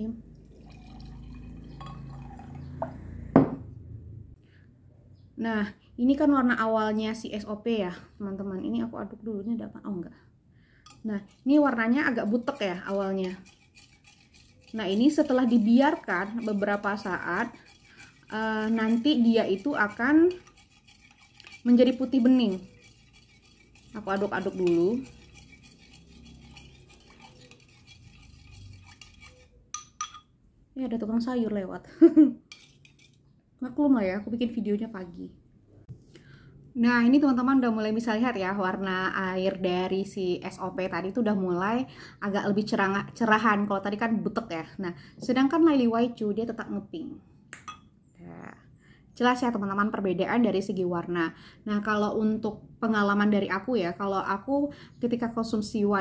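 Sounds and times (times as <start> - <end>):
water pouring into a glass: 0.4 - 2.9
glass clink: 0.8 - 2.7, 29.8 - 30.4, 47.6 - 47.9.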